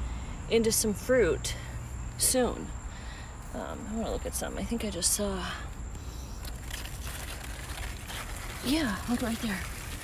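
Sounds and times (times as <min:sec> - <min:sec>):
leaves rustling and crackling: 0:06.0 - 0:10.0.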